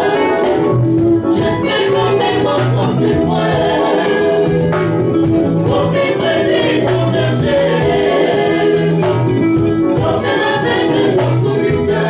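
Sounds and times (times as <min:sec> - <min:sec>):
group singing gospel in harmony: 0:00.0 - 0:12.0
keyboard accompaniment: 0:00.0 - 0:12.0.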